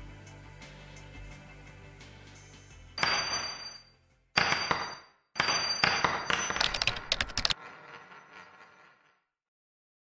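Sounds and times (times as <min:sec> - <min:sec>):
metallic clang with ringing: 0:03.0 - 0:06.6
rapid sharp clicks: 0:06.6 - 0:07.6.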